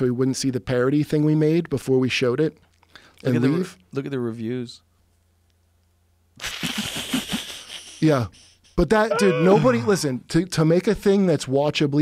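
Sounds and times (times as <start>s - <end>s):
man's breathy wheezing laugh: 6.4s - 9.9s.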